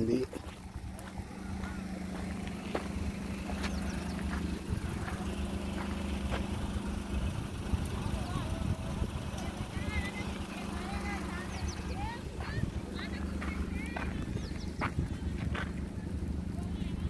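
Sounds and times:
small birds chirping: 0.0 - 17.0
steady low hum: 0.2 - 17.0.

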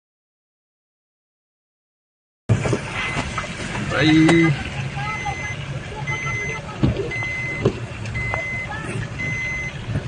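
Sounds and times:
low engine rumble: 2.5 - 10.0
vehicle warning beeper: 3.0 - 3.5, 5.0 - 9.9.

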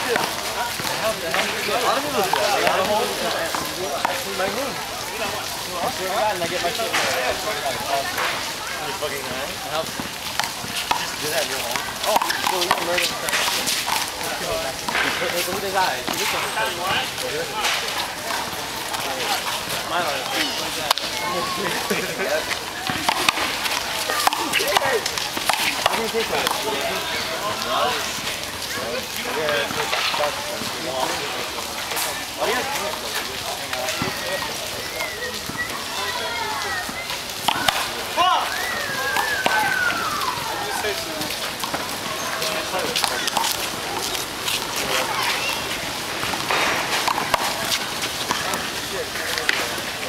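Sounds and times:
people talking indistinctly: 0.0 - 50.0
players' voices and calls: 0.0 - 50.0.

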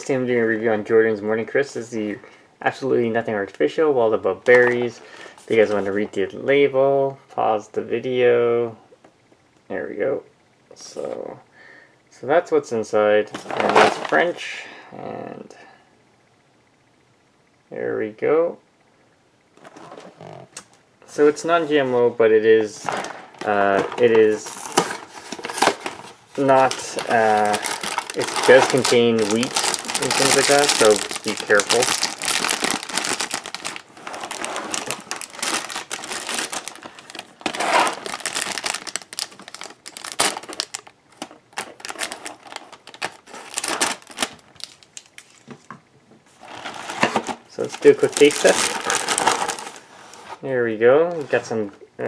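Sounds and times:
plastic bag crinkling: 13.4 - 14.4, 22.8 - 45.5, 46.4 - 49.9.

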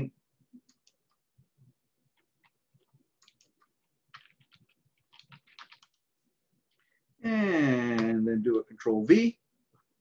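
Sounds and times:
computer keyboard keystrokes: 2.4 - 6.0.

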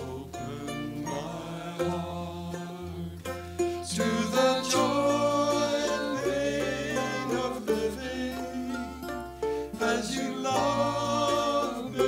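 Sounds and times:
acoustic string band playing: 0.0 - 12.0
men singing: 0.0 - 12.0.

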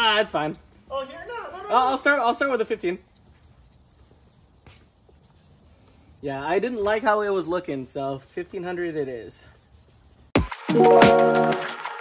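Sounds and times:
wet sandpaper rubbing: 0.0 - 10.4.

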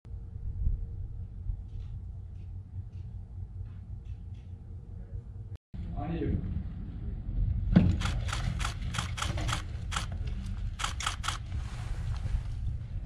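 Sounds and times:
steady low rumble: 0.1 - 13.0.

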